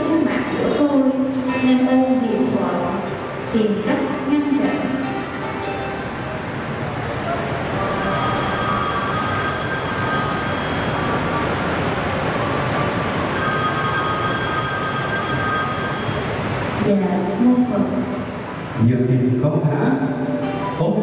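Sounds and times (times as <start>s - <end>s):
phone ringtone: 7.9s - 11.8s, 13.3s - 16.9s.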